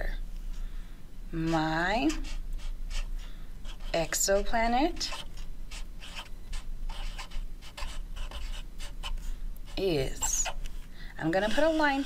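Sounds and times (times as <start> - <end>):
marker scratching on paper: 1.4 - 12.0.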